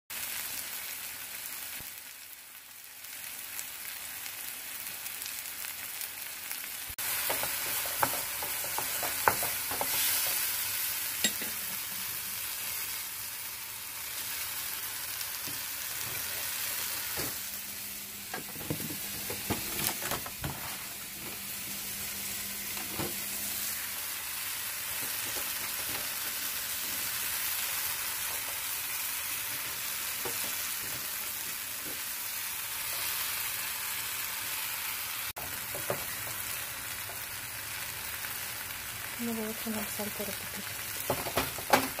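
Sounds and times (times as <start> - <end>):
vegetables sizzling in a frying pan: 0.1 - 42.0
knocks and clatters of handling: 41.0 - 42.0.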